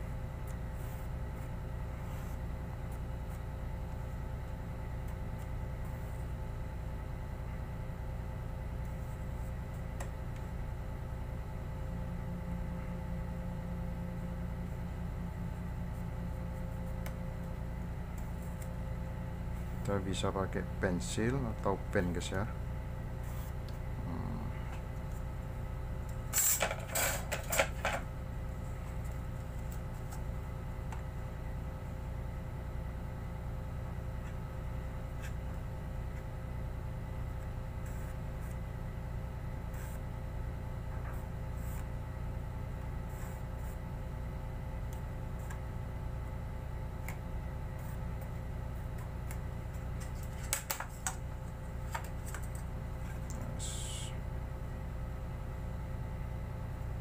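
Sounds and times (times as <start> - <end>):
low steady hum: 0.0 - 57.0.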